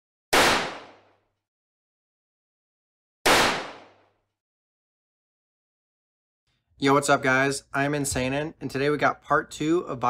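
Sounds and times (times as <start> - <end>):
loud sound-effect bangs: 3.3 - 4.0.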